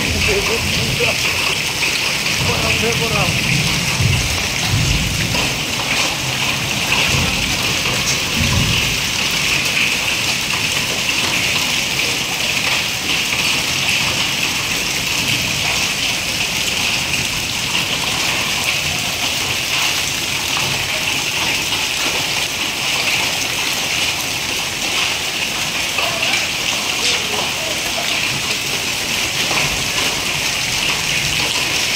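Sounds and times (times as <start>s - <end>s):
heavy rain and hail: 0.0s - 31.9s.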